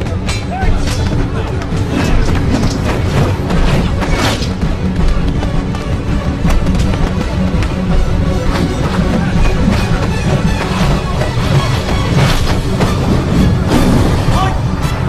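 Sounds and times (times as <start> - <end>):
loud action film score: 0.0 - 15.0.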